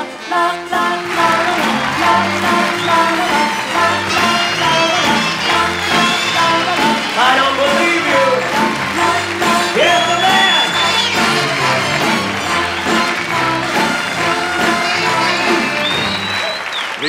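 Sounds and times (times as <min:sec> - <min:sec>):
audience applauding: 0:00.0 - 0:17.0
orchestra with horns playing: 0:00.0 - 0:17.0.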